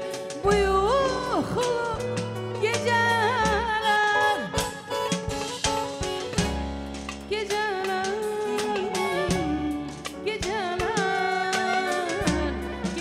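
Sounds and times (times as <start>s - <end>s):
woman singing: 0.0s - 5.1s, 7.3s - 13.0s
drum hits: 0.0s - 13.0s
live band playing: 0.0s - 13.0s.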